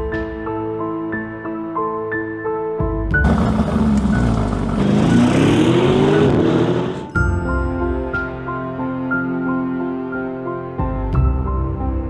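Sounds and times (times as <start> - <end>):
car engine revving: 3.2 - 7.1.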